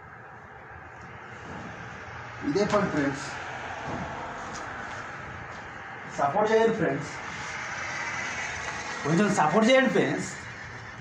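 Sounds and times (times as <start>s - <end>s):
machine running: 0.0s - 11.0s.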